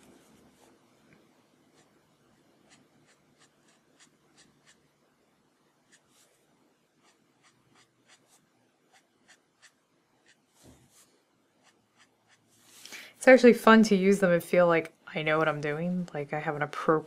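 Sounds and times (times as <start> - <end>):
marker scratching on paper: 2.7 - 4.9, 5.8 - 6.4, 7.0 - 12.8.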